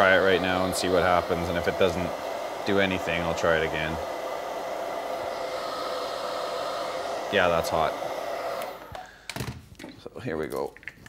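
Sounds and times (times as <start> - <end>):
hair dryer blowing: 0.0 - 9.3.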